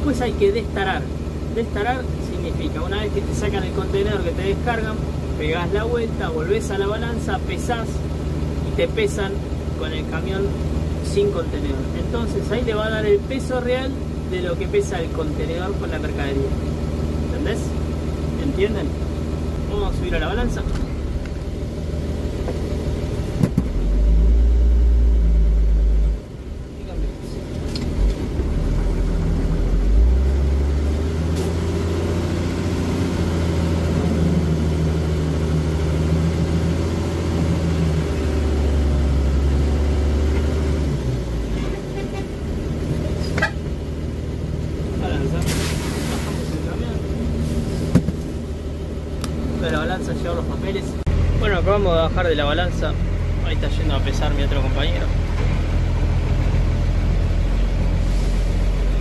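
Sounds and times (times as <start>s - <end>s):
truck diesel engine running: 0.0s - 59.0s
short hiss: 45.4s - 46.6s.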